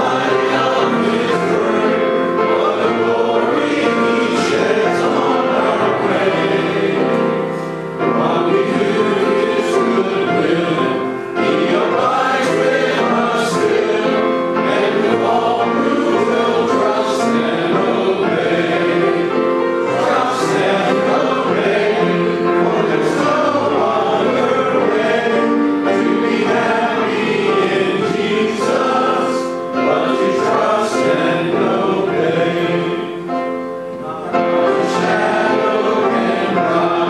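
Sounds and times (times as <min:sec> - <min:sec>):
congregation singing a hymn: 0:00.0 - 0:37.0.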